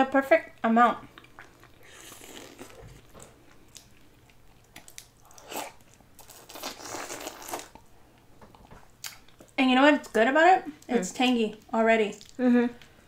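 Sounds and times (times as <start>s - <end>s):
wet chewing: 1.0s - 9.6s.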